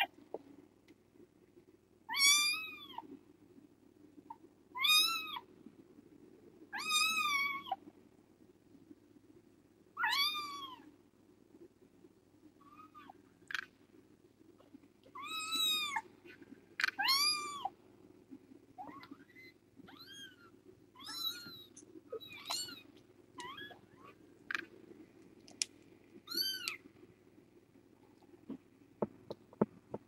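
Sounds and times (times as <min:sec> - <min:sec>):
faint steady hum: 0:00.0 - 0:30.0
kittens meowing: 0:16.8 - 0:17.7, 0:18.8 - 0:24.6.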